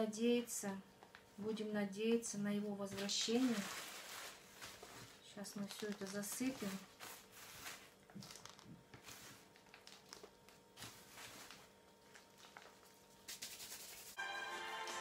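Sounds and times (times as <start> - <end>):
potting mix rustling and pattering: 2.8 - 14.2
crinkles: 2.9 - 13.7
background music: 14.2 - 15.0.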